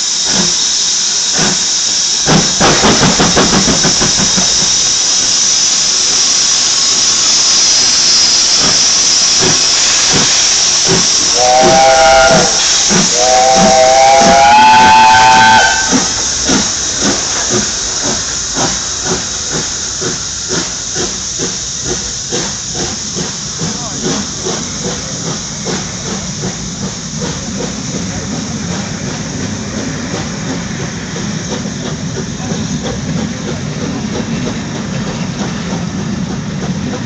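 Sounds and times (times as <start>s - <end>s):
steam hissing: 0.0s - 37.0s
steam locomotive exhaust chuffing: 0.0s - 37.0s
steam locomotive whistle blasts: 4.6s - 16.2s.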